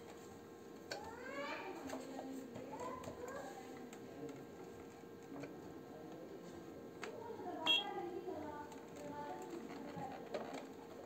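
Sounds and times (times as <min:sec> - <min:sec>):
high-pitched electronic beep: 0:07.7 - 0:07.9.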